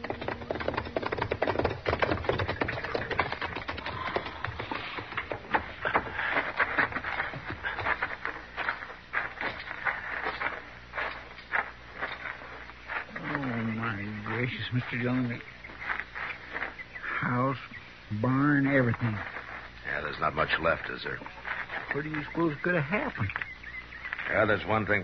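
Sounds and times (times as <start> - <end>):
fire crackling: 4.0 - 25.0.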